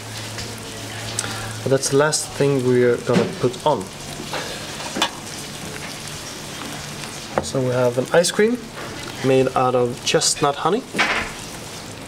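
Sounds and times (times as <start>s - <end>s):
faint steady hum: 0.0s - 3.0s
cheese sizzling: 0.0s - 12.0s.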